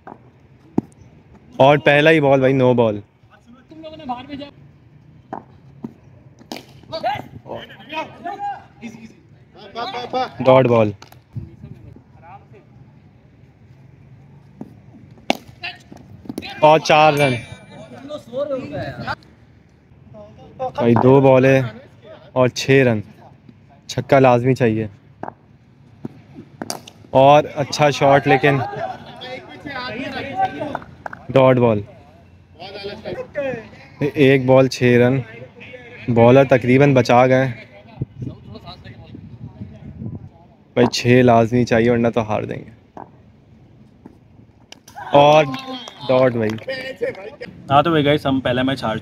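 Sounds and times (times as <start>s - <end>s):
sharp crack: 6.4s - 6.9s, 26.6s - 27.0s
cricket bat striking ball: 26.0s - 27.0s
players calling out: 27.1s - 37.9s, 44.8s - 49.0s.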